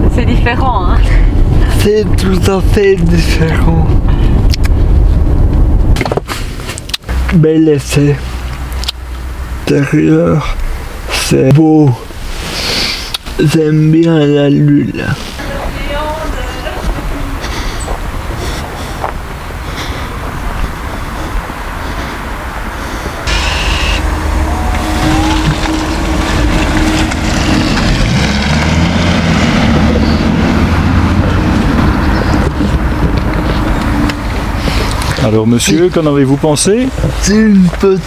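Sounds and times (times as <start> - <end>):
steady rumble: 0.0 - 13.9, 14.8 - 38.0
car pulling away and driving off: 16.6 - 38.0.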